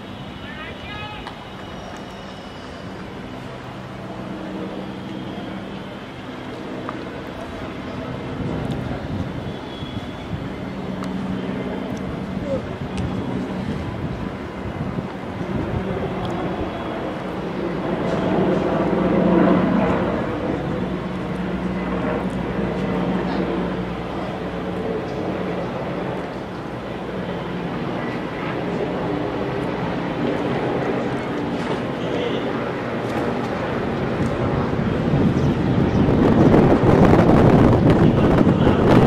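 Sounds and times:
people shouting: 0.4 - 1.3.

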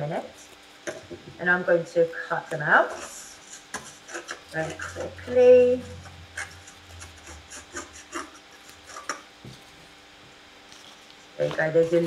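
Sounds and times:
scissors cutting cardboard: 6.3 - 9.7.

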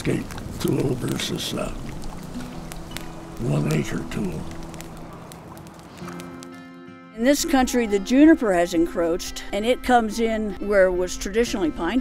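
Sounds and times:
fire crackling and popping: 0.0 - 8.6
low sustained music notes: 0.0 - 12.0.

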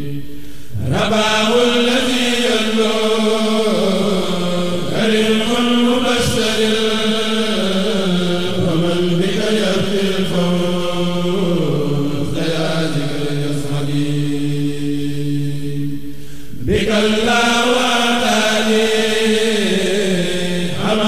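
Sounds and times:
men chanting verse: 0.0 - 15.8, 16.5 - 21.0.

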